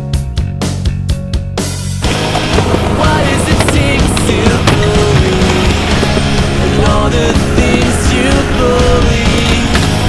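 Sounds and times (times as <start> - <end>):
loud music: 0.1 - 10.0
skateboard wheels rolling on concrete: 1.7 - 10.0
skateboard clacks: 2.0 - 10.0.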